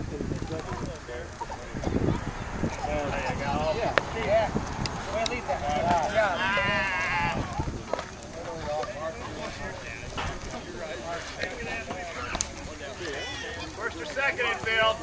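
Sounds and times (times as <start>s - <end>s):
players calling out: 0.0s - 15.0s
drawn-out shout: 6.0s - 7.8s.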